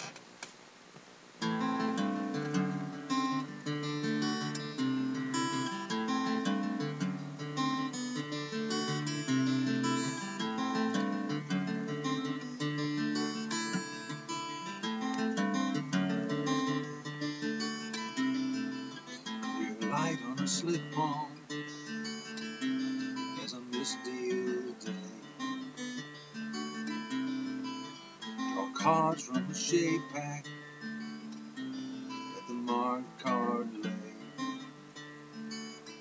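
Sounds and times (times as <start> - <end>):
acoustic guitar playing: 1.4 - 36.0.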